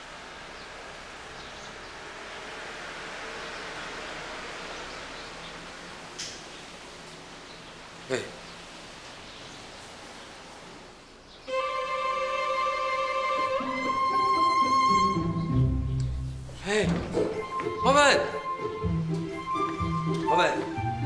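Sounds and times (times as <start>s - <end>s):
background hiss: 0.0s - 21.0s
knocks: 16.5s - 17.8s.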